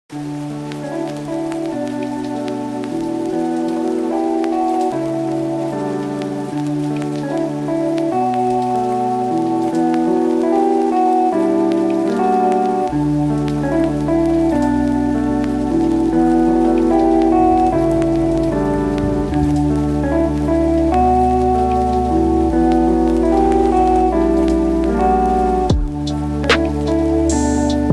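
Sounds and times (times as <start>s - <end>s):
rain falling: 0.1s - 27.9s
soft keyboard chords: 0.2s - 27.9s.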